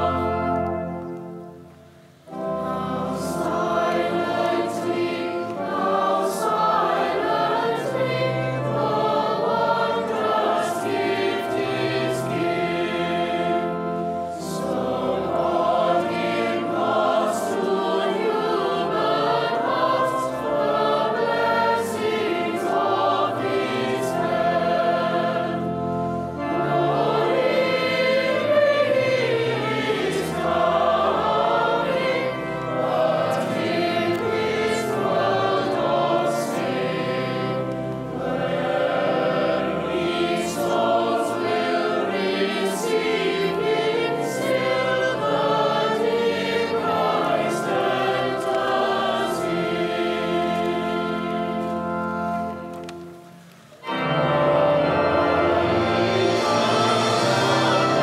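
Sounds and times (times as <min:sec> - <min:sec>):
choir singing a carol: 0:00.0 - 0:58.0
pipe organ: 0:00.0 - 0:58.0.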